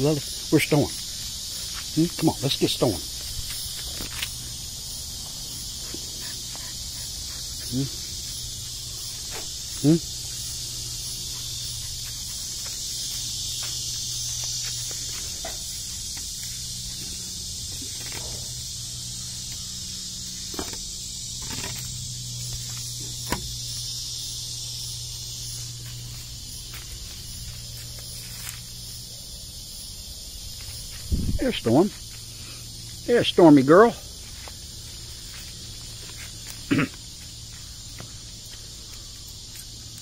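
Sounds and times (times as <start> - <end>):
high-pitched insect chorus: 0.0 - 40.0
rustles and clicks in dry leaves: 0.1 - 6.1, 34.2 - 40.0.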